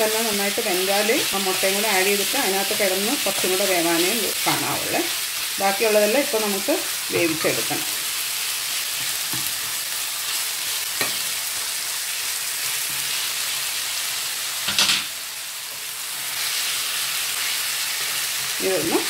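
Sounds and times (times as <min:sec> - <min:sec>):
meat sizzling in a pan: 0:00.0 - 0:19.0.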